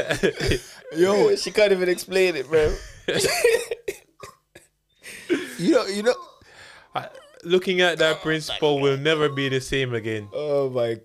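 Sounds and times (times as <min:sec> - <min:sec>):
man laughing: 0:00.0 - 0:01.1, 0:02.8 - 0:03.9, 0:07.0 - 0:09.8
man coughing: 0:03.1 - 0:06.3
breathy gasps: 0:06.3 - 0:07.0.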